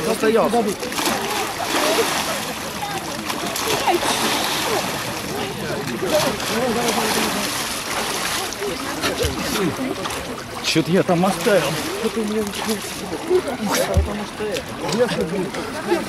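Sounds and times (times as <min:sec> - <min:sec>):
people's voices: 0:00.0 - 0:16.0
water splashing: 0:00.0 - 0:16.0.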